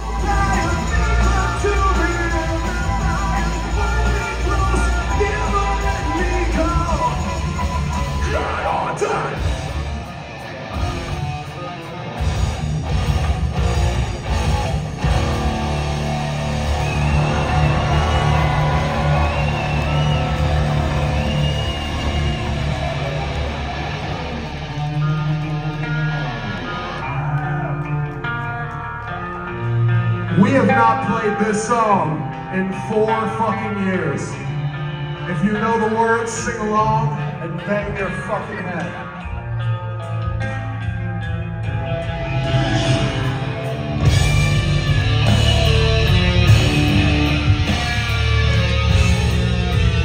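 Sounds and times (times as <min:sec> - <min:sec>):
electric guitars and bass chords: 0:00.0 - 0:50.0
live rock band playing loudly: 0:00.0 - 0:50.0.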